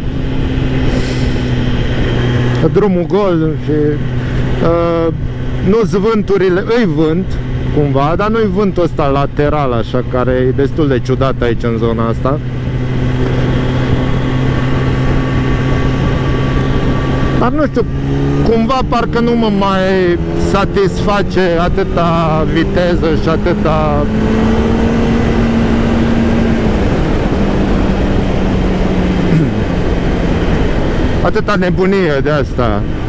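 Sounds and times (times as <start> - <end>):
wind rush: 0.0 - 6.0, 6.6 - 33.0
motorcycle engine humming: 0.0 - 33.0.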